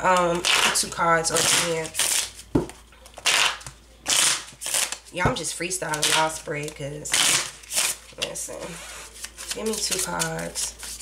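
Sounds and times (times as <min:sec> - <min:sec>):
cards being shuffled: 0:09.0 - 0:11.0.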